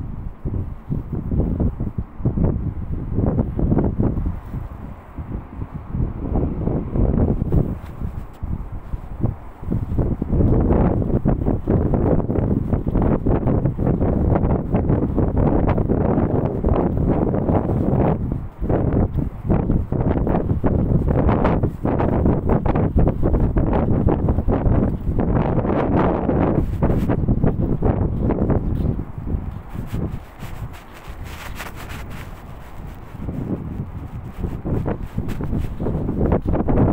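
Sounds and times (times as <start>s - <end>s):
wind buffeting microphone: 0.0s - 36.9s.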